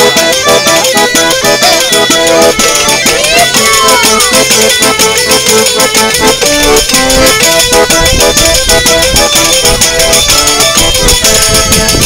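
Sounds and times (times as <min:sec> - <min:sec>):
fast steady percussion beat: 0:00.0 - 0:12.0
folk melody of held notes: 0:00.0 - 0:12.0.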